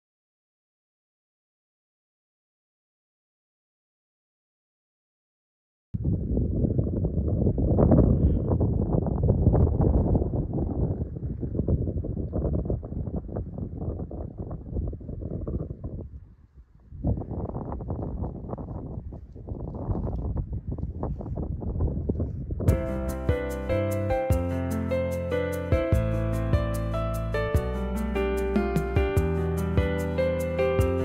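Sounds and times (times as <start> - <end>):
wind buffeting microphone: 6.0 - 26.8.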